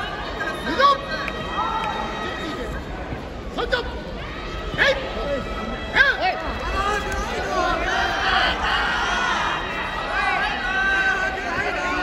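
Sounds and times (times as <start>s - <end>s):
background hubbub: 0.0s - 12.0s.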